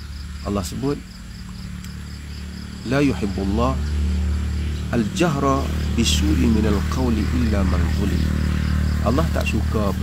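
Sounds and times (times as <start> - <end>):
crickets chirping: 0.0 - 10.0
low hum: 0.0 - 10.0.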